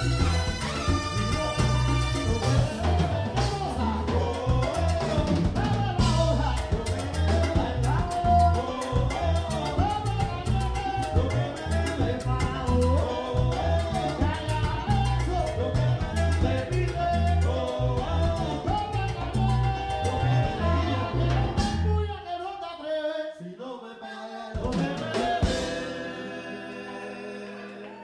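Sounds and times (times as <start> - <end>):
electric bass: 0.0 - 22.2
salsa band playing: 0.0 - 22.5, 24.6 - 28.0
man singing: 0.0 - 28.0.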